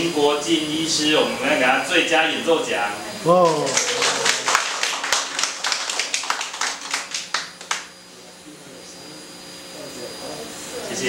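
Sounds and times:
group clapping: 3.3s - 7.9s.

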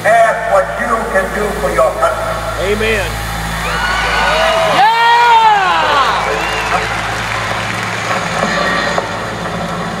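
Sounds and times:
crowd noise hiss: 0.0s - 10.0s
low drone over sound system: 0.0s - 10.0s.

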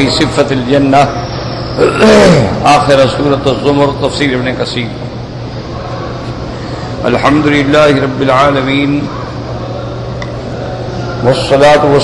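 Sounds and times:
low constant hum: 0.0s - 12.0s.

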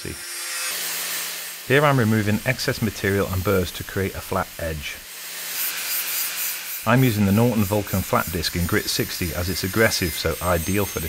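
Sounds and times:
angle grinder grinding steel: 0.0s - 11.0s.

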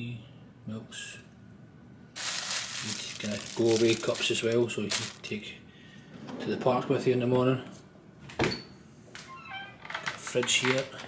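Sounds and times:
cabinet door creaking: 8.4s - 10.9s.

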